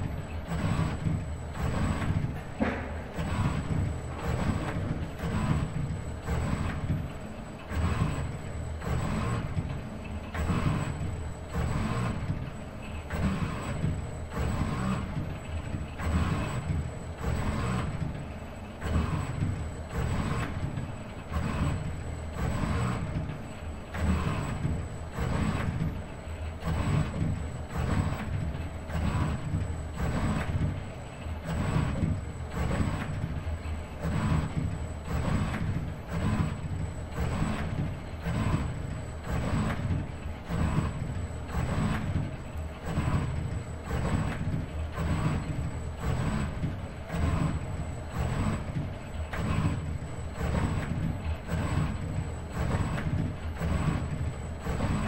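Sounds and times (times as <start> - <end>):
robot arm motors whirring: 0.0 - 55.0.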